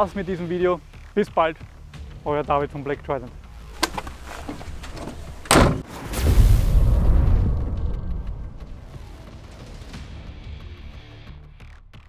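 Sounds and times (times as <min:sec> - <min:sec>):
van door slamming: 0:03.8 - 0:05.9.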